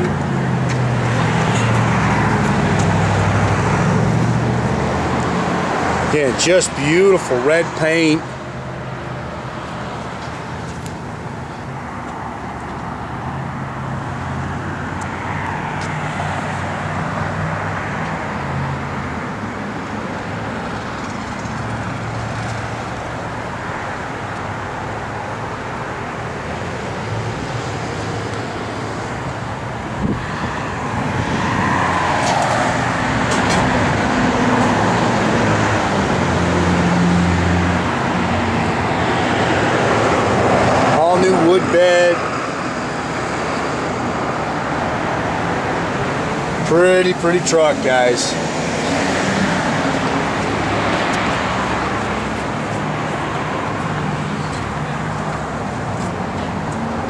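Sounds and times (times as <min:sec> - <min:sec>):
vehicles passing: 0:00.0 - 0:57.0.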